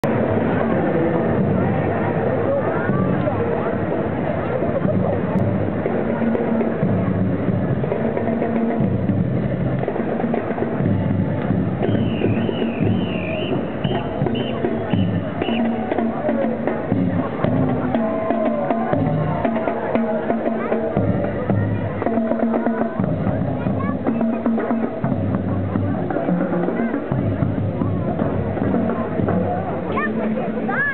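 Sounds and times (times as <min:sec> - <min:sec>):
drums: 0:00.0 - 0:30.9.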